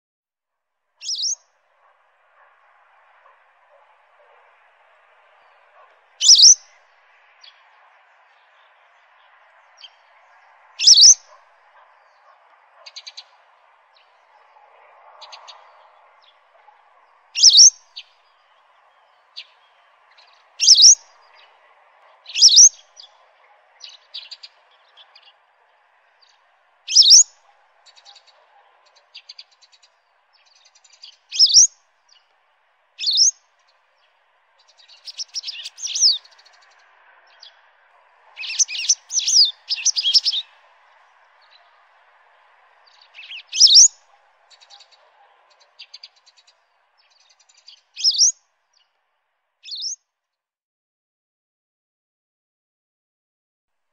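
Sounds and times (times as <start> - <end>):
small bird chirping: 1.0 - 1.4, 5.7 - 6.8, 10.8 - 13.4, 17.4 - 18.1, 18.9 - 21.5, 22.2 - 25.4, 26.2 - 32.2, 33.0 - 33.8, 34.6 - 37.6, 38.4 - 40.5, 42.8 - 48.4, 49.6 - 50.0.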